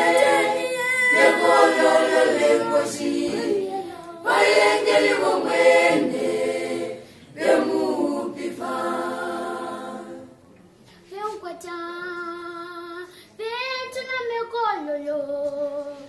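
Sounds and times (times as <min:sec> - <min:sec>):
choir singing unaccompanied: 0:00.0 - 0:10.4.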